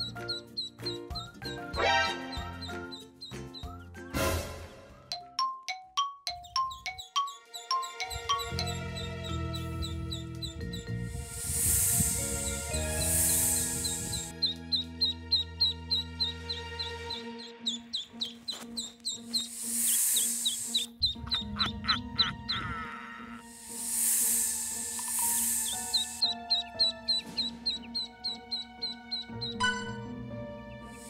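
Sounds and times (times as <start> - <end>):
ducklings peeping: 0.0 - 3.9, 6.4 - 23.4, 24.5 - 29.6
background music with sustained notes: 0.0 - 31.0.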